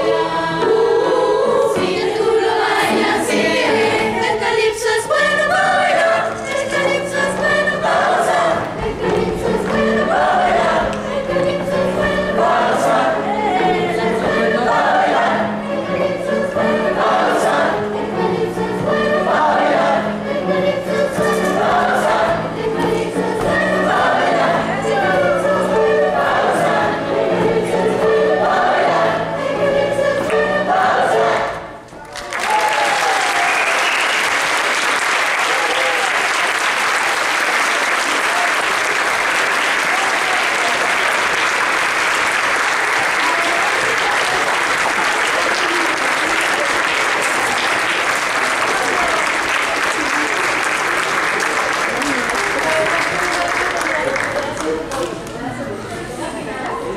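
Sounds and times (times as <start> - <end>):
choir singing: 0.0 - 31.9
audience applause: 32.0 - 55.4.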